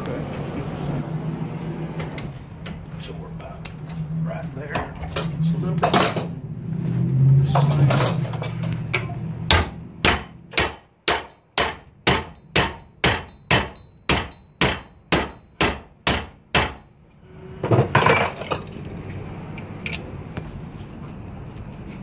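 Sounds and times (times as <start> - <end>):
hammer striking hot steel: 9.0 - 17.0.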